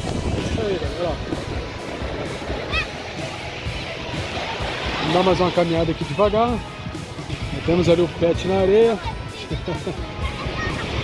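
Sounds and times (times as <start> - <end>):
background music: 0.0 - 11.0
small waves washing: 0.0 - 11.0.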